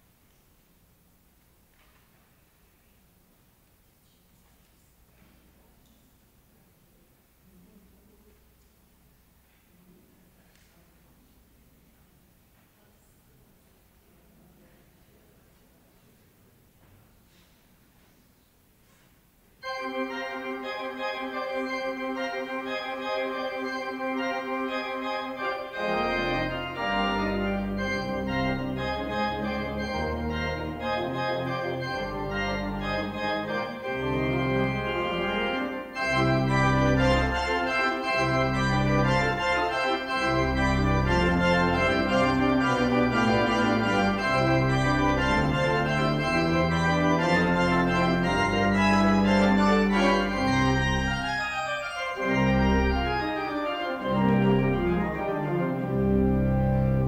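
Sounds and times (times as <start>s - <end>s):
pipe organ playing: 19.6s - 57.0s.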